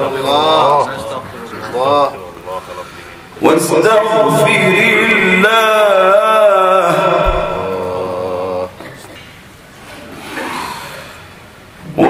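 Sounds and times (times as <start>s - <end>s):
man chanting: 3.5s - 8.8s.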